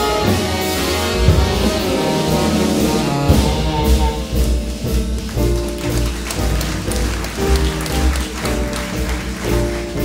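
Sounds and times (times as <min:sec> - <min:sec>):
clarinet and saxophone chords: 0:00.0 - 0:05.0
double bass: 0:00.0 - 0:10.0
piano: 0:00.0 - 0:10.0.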